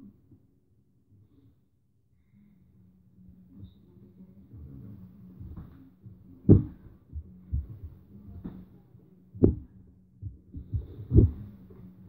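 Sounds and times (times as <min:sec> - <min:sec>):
faint steady hum: 0:00.0 - 0:12.0
hands and feet thumping on floor: 0:06.4 - 0:08.7, 0:09.4 - 0:11.5.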